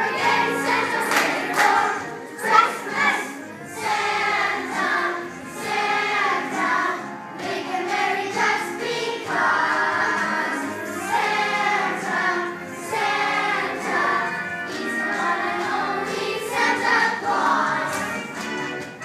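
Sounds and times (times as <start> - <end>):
children singing together: 0.0 - 18.4.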